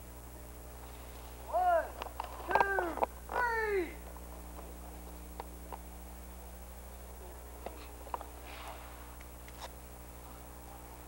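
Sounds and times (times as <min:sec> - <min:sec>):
young voice crying out: 0:02.6 - 0:04.0.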